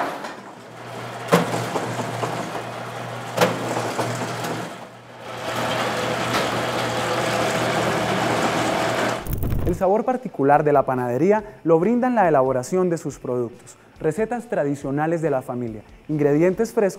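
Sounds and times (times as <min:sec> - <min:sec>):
machine motor hum: 0:00.1 - 0:09.8.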